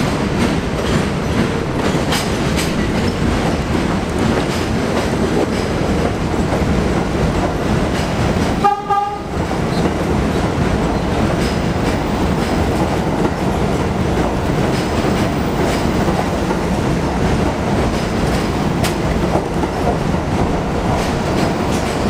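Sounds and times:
train wheels rumbling on rails: 0.0 - 22.0
train horn blast: 8.6 - 9.4.

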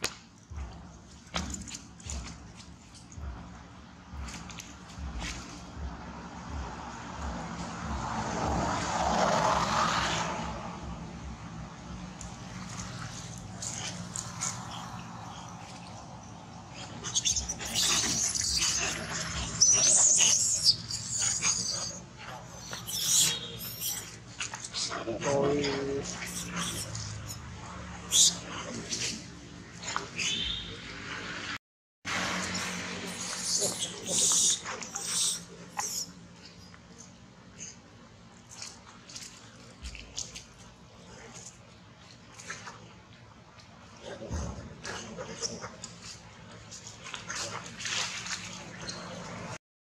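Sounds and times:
low drawn-out monkey call: 16.7 - 24.2, 26.1 - 27.4, 28.0 - 28.5, 32.5 - 36.2
macaques screaming: 16.9 - 24.2, 26.0 - 27.4, 28.0 - 28.4, 32.5 - 36.1.

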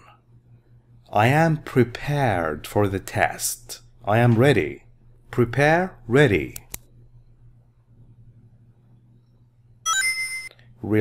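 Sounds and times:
faint low hum: 0.0 - 11.0
electronic chime: 9.8 - 10.5.

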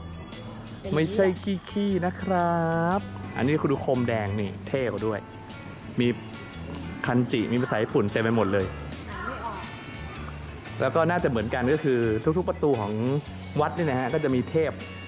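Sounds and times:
high-pitched insect buzz: 0.0 - 15.0
people's voices: 0.4 - 14.9.

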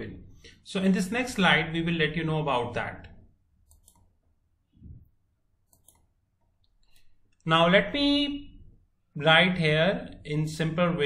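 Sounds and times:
computer mouse clicks: 3.6 - 4.2, 5.6 - 7.4.

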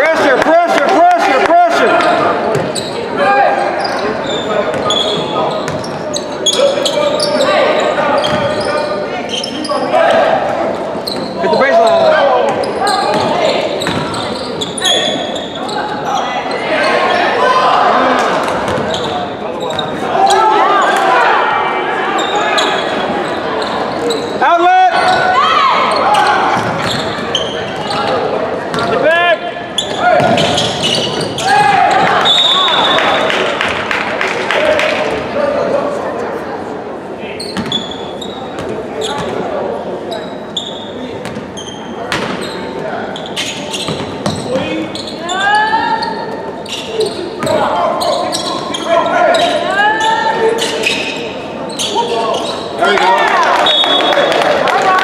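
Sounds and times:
voices echoing in a hall: 0.0 - 55.0
sneakers squeaking: 1.8 - 21.2, 22.0 - 33.7, 37.3 - 52.8
ball bouncing on hardwood court: 13.1 - 14.1, 30.2 - 31.3, 42.1 - 42.4, 43.9 - 44.4.

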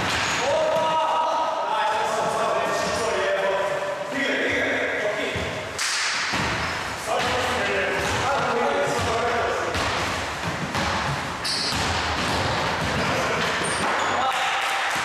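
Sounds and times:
basketball bouncing on wooden floor: 8.0 - 14.0.

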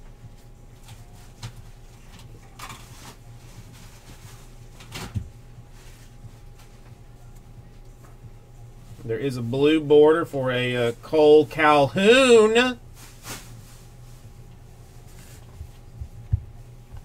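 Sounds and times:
low steady hum: 0.0 - 17.0.

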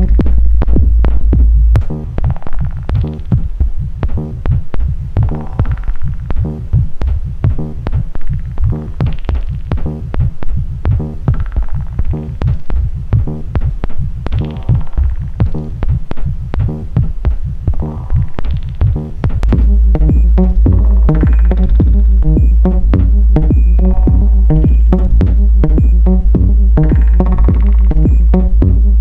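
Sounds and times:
buzzy synthesizer tone: 0.0 - 17.0, 17.6 - 29.0
heavy bass pulse: 0.0 - 29.0.

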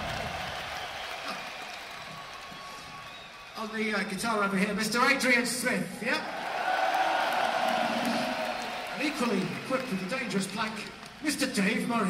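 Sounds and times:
crowd cheering and applauding: 0.0 - 4.2, 6.1 - 11.7.

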